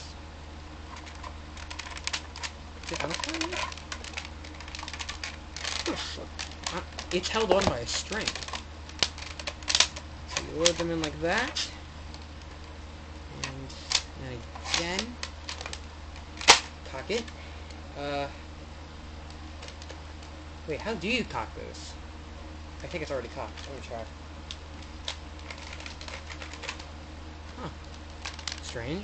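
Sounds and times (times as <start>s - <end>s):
steady low hum: 0.0s - 29.0s
plastic toy clicks and handling: 1.0s - 11.6s, 25.0s - 26.9s, 28.2s - 28.8s.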